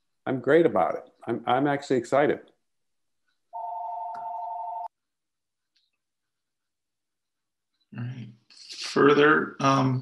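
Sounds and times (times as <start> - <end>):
electronic telephone ring: 3.6 - 4.9.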